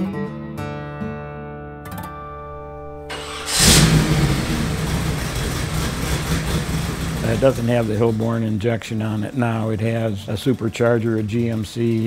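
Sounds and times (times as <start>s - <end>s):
supercharged engine idling: 2.8s - 9.2s.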